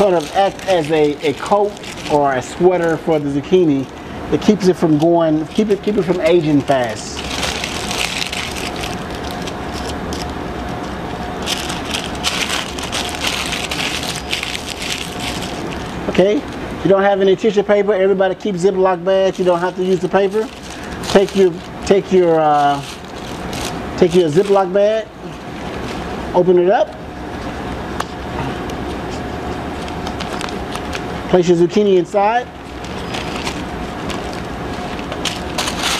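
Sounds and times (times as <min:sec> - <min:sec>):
parchment paper crinkling: 0:00.0 - 0:16.6, 0:18.5 - 0:26.2, 0:28.9 - 0:31.2, 0:32.6 - 0:35.9
background hum and hiss: 0:00.0 - 0:35.9.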